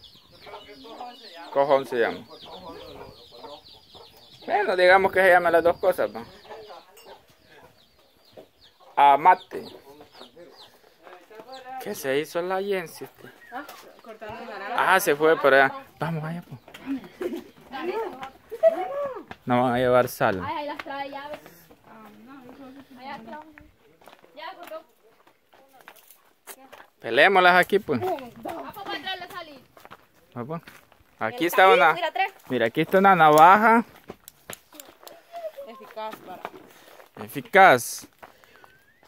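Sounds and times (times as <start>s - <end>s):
chickens clucking: 0.0s - 18.9s
voices talking quietly: 0.0s - 39.0s
footsteps on dirt path: 7.2s - 39.0s.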